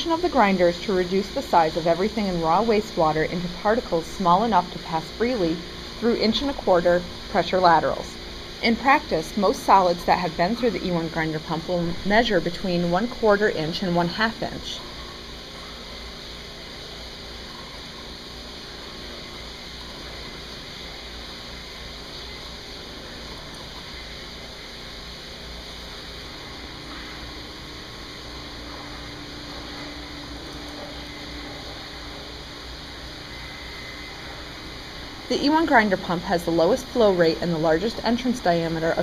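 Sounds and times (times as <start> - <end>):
grinder pump whirring: 0.0 - 39.0.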